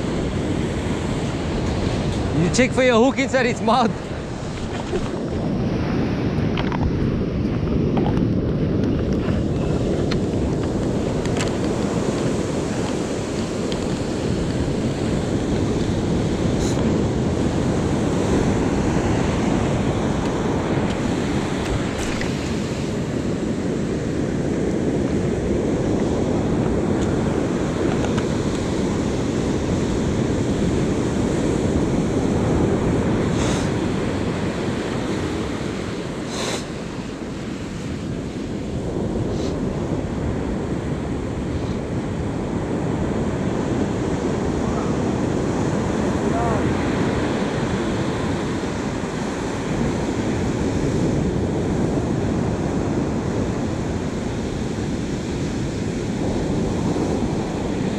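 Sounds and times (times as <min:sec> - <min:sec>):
surf breaking on beach: 0:00.0 - 0:57.9
wind on microphone: 0:00.0 - 0:57.9.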